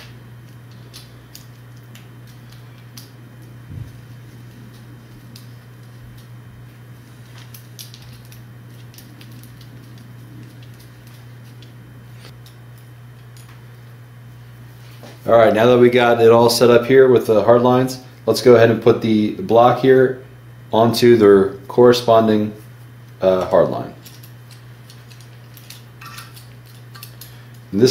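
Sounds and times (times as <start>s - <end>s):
steady low hum: 0.0s - 27.9s.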